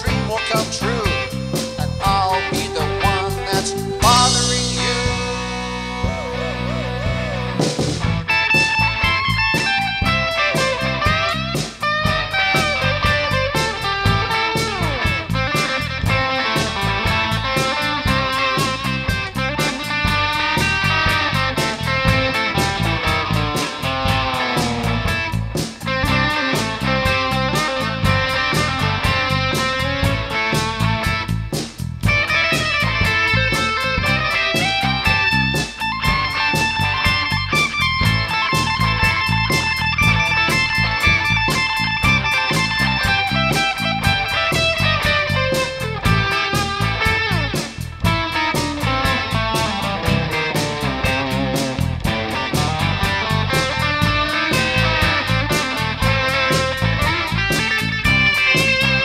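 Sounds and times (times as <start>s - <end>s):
electric guitar solo: 0.0s - 59.0s
steady drum beat: 0.0s - 59.0s.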